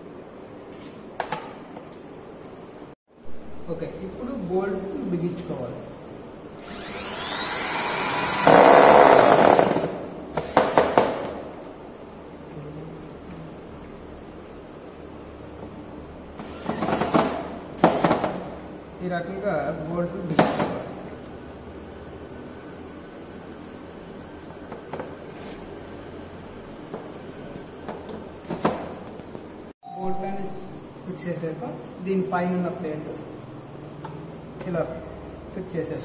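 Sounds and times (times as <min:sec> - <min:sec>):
low background hiss and hum: 0:00.0 - 0:07.8
electric drill whining: 0:06.6 - 0:10.6, 0:16.4 - 0:17.4.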